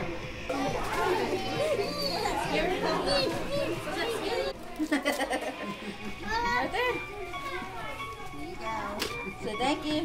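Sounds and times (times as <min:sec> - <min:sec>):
children and adults talking: 0:00.0 - 0:10.0.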